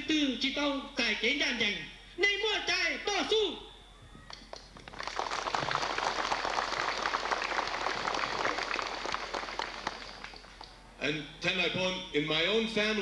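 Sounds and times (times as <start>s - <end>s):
crowd applauding: 4.4s - 10.8s.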